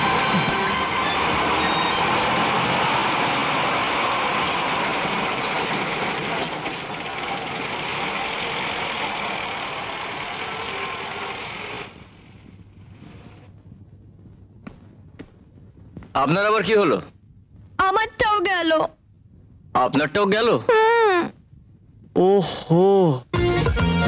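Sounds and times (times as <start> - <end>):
van engine running: 0.0 - 13.4
road noise: 0.0 - 13.5.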